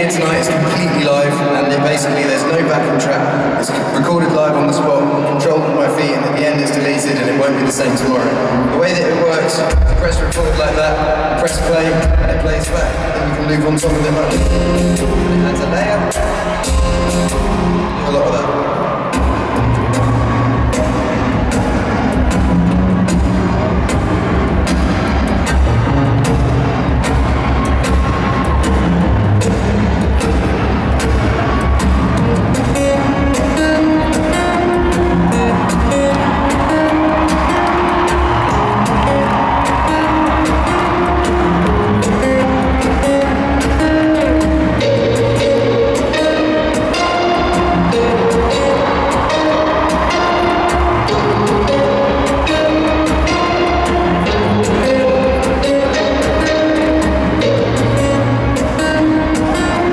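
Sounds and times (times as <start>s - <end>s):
picked and strummed guitar: 9.7s - 59.9s.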